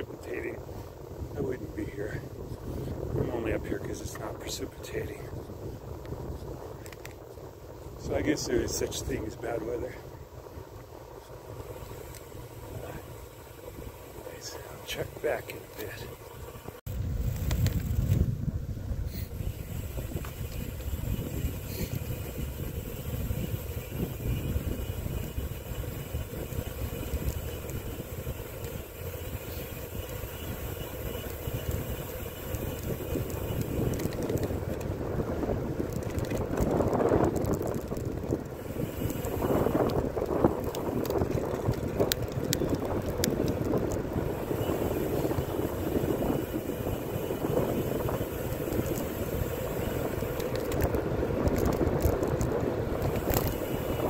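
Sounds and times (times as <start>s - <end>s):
bicycle tyres rolling on asphalt: 0.0s - 54.0s
wind buffeting microphone: 0.0s - 54.0s
sharp ticks: 20.0s - 35.0s, 35.8s - 54.0s.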